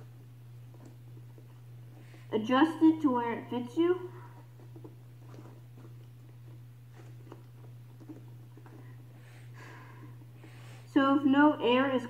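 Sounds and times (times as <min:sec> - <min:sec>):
rubber gas mask rubbing and creaking: 0:00.0 - 0:03.0, 0:03.7 - 0:11.0
steady low hum: 0:00.0 - 0:12.0.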